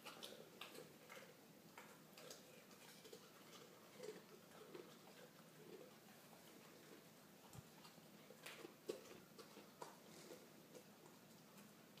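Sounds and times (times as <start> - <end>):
dog licking tile floor: 0.0 - 12.0.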